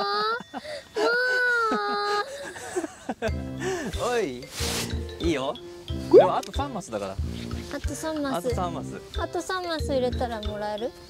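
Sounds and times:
young woman wailing: 0.0s - 2.3s.

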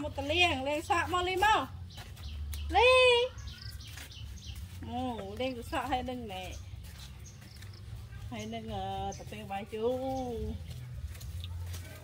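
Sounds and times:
woman talking: 0.0s - 1.8s, 2.7s - 3.4s, 4.8s - 6.8s, 8.3s - 10.6s.

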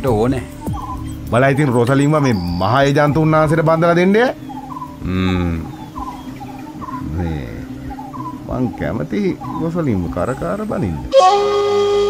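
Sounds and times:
short chirping calls: 0.0s - 12.0s
steady low drone: 0.0s - 12.0s
voice-like murmur: 5.0s - 5.8s.

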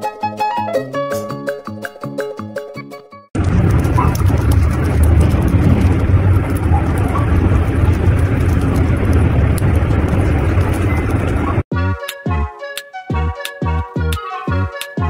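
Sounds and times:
loud low rumbling noise: 3.4s - 11.7s.

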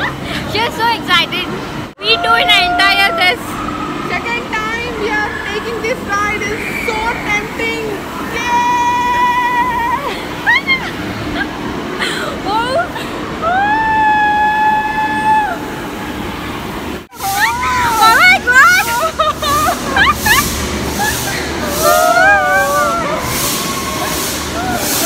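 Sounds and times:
woman talking excitedly: 0.5s - 3.5s, 4.1s - 8.5s, 17.2s - 20.5s
woman screaming on a ride: 2.0s - 4.0s, 8.2s - 10.9s, 12.5s - 15.8s, 17.2s - 25.0s.

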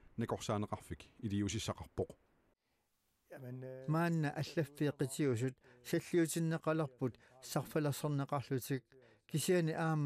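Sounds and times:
man speaking: 0.1s - 2.2s, 3.3s - 10.0s.

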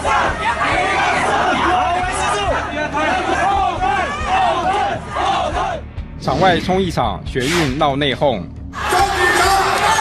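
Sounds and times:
jostling crowd: 0.0s - 5.9s, 8.8s - 10.0s
voices shouting in unison: 0.0s - 5.9s, 8.8s - 10.0s.

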